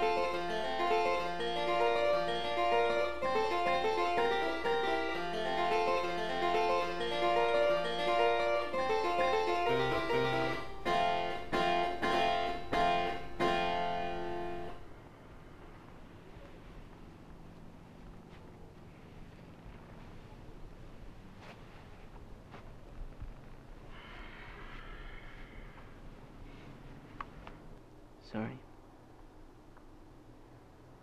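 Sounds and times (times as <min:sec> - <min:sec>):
keyboard title music: 0:00.0 - 0:14.9
faint background hiss: 0:00.0 - 0:31.0.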